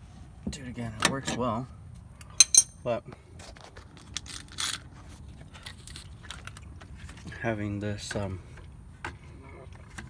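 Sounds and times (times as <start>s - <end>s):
metal wrench clinking: 2.4s - 2.8s.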